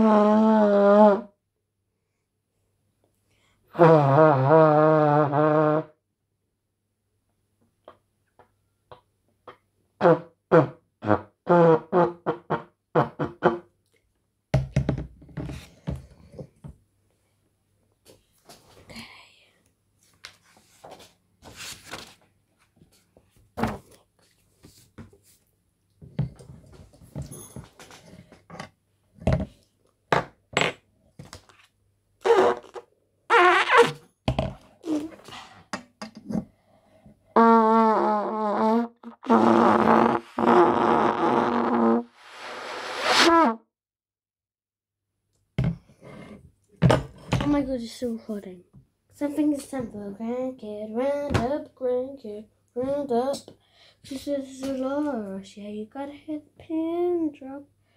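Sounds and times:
knocks and handling noises: 14.6s - 16.8s, 26.0s - 31.7s.

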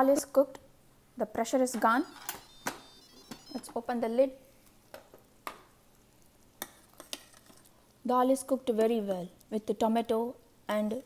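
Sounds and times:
spoon stirring thick dal: 5.9s - 8.0s.

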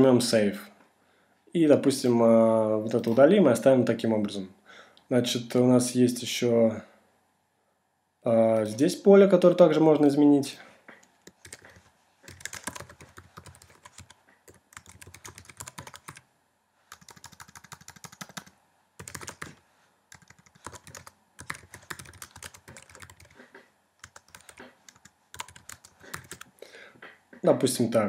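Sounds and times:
typing on computer keyboard: 11.2s - 16.2s, 16.9s - 26.5s.

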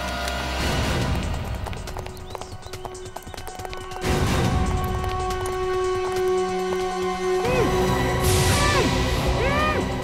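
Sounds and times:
dramatic background score: 0.0s - 10.0s.

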